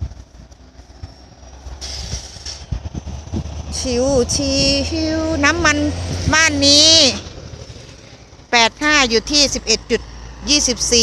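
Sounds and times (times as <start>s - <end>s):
vehicle rumble and tyre hiss: 0.0s - 11.0s.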